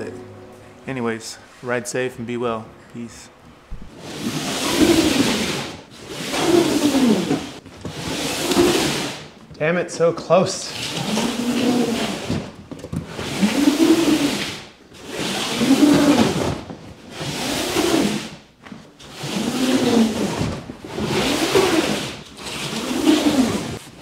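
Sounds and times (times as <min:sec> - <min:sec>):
low groan: 0:00.0 - 0:03.9
cardboard box scraping on wooden floor: 0:03.9 - 0:09.3, 0:10.8 - 0:12.5, 0:13.1 - 0:18.4, 0:19.0 - 0:24.0.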